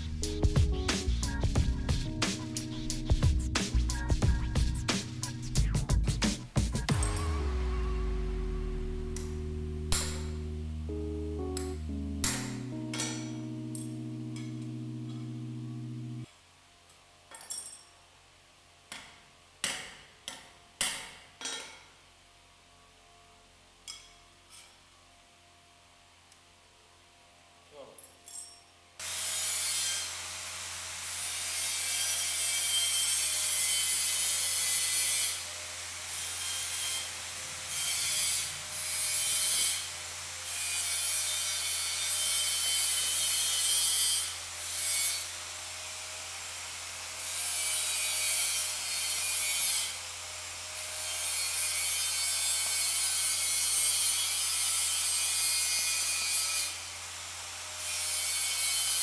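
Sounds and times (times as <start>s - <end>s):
steady low hum: 0.0s - 16.3s.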